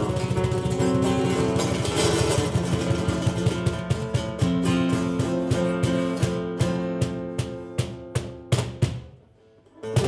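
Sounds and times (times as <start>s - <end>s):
acoustic guitar strumming: 0.0s - 8.8s
cajon struck by hand: 0.0s - 9.2s.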